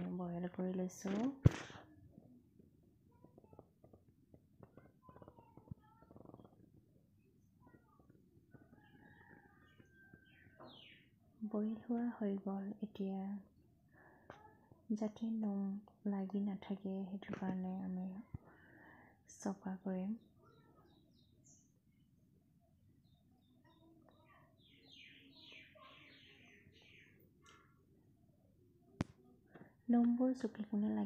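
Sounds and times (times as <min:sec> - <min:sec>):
woman speaking: 0:00.0 - 0:01.8, 0:11.4 - 0:13.5, 0:14.9 - 0:18.3, 0:19.3 - 0:20.2, 0:29.9 - 0:31.0.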